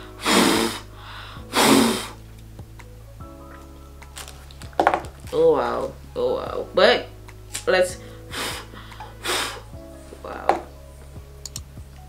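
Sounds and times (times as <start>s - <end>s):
breath blown through cloth: 0.0s - 2.2s, 8.0s - 9.8s.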